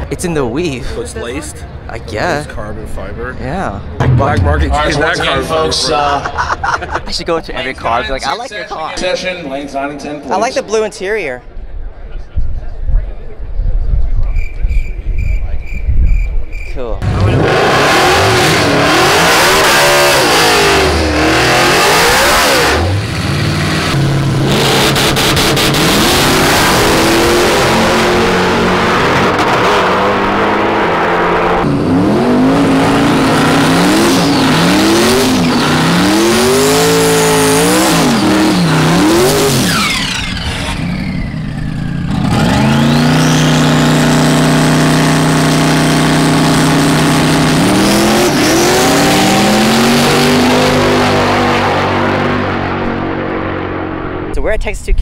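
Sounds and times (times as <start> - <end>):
engine whine: 3.7 - 6.2, 17.0 - 54.3
drag car engines revving: 17.0 - 54.3.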